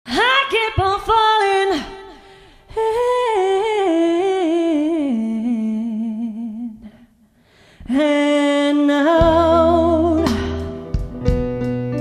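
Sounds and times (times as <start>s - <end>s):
woman singing unaccompanied: 0.1s - 7.1s, 7.9s - 10.5s.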